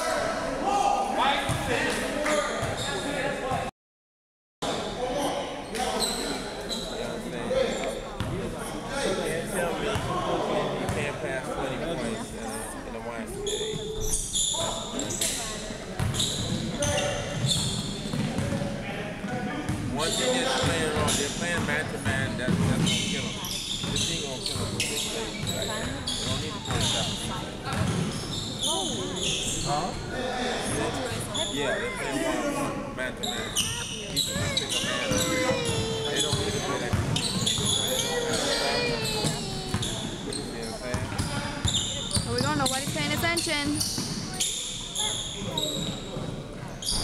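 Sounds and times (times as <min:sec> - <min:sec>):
voices: 0:20.0 - 0:45.8.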